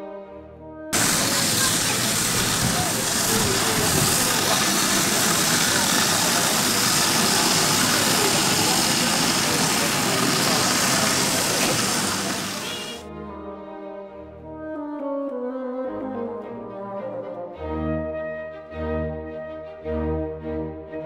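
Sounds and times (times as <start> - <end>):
people talking: 1.0 - 13.0
vehicle engine idling: 1.0 - 13.0.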